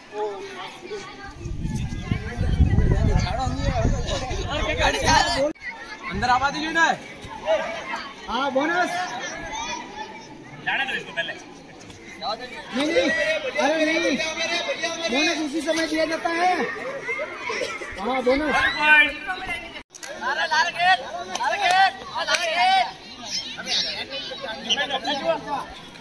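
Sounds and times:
children chattering: 0.0 - 26.0
voices talking and calling out: 0.0 - 26.0.

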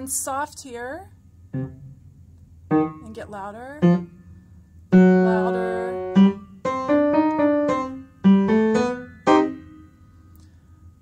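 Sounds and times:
piano phrase: 1.5 - 2.0, 4.9 - 10.2.

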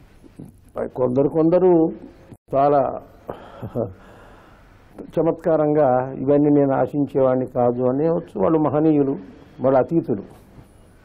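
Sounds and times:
man speaking: 0.7 - 4.0, 5.0 - 10.4
man breathing: 3.3 - 4.9.

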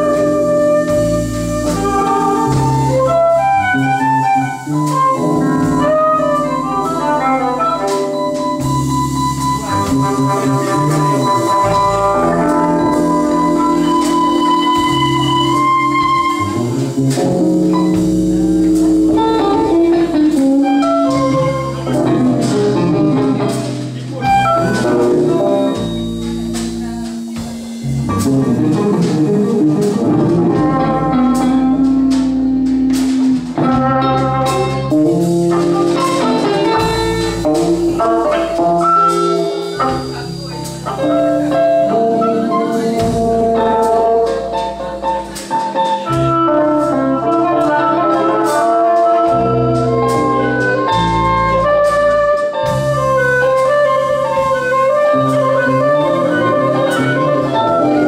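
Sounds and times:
drums: 0.0 - 58.0
electric bass: 0.0 - 58.0
electric guitars: 0.0 - 58.0.

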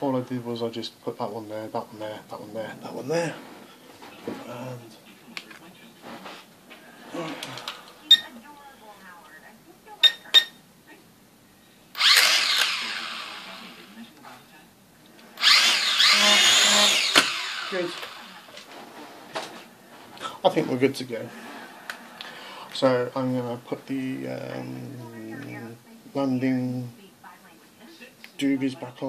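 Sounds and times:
high beeps: 8.1 - 8.3
quadcopter propellers whining: 12.0 - 13.9, 15.4 - 18.5.

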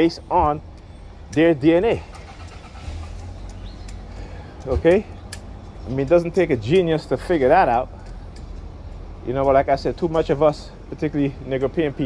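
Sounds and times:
car traffic rumble: 0.0 - 12.0.

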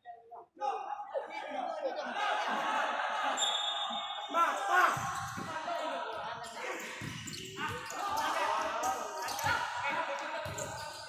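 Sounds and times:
spectators chatter in echoing hall: 0.0 - 11.0
shoes squeaking on court floor: 4.9 - 5.6, 6.4 - 9.5, 10.4 - 11.0.

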